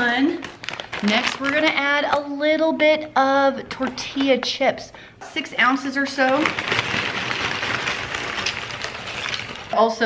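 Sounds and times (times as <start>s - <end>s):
chips pouring onto a pan: 6.4s - 9.8s.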